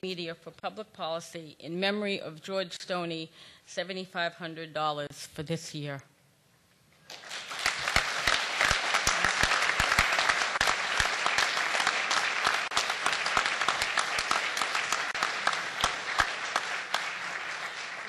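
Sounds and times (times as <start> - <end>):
audience applauding: 7.1 - 18.0.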